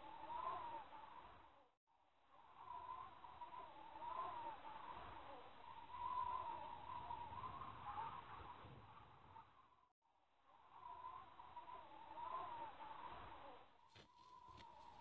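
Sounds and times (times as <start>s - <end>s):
faint wavering calls: 0.0s - 1.6s, 2.3s - 9.8s, 10.5s - 15.0s.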